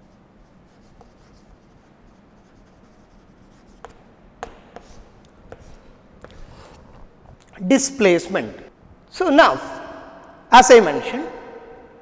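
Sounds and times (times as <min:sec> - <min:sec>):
chalk scratching on blackboard: 0:00.0 - 0:06.8
chalk tap: 0:00.7 - 0:01.7, 0:02.4 - 0:06.4.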